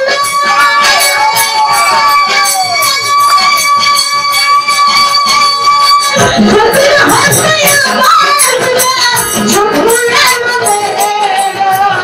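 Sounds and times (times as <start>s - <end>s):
woman singing: 0.0s - 1.5s, 6.1s - 12.0s
fast percussion beat: 0.0s - 12.0s.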